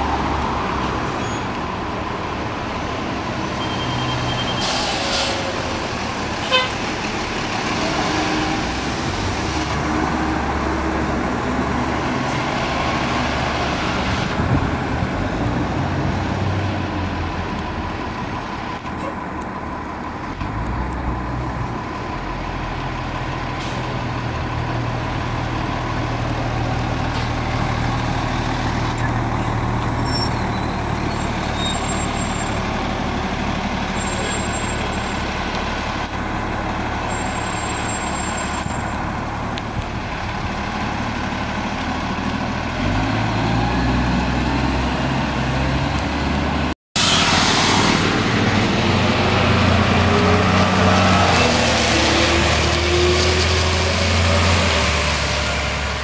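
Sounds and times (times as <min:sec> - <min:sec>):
bus driving past: 0:00.0 - 0:56.0
diesel bus engine revving: 0:39.5 - 0:56.0.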